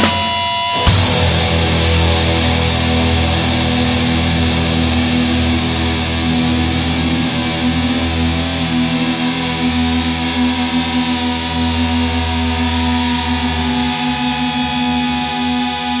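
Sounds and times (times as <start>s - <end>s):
distorted electric guitar chord: 0.0s - 15.6s.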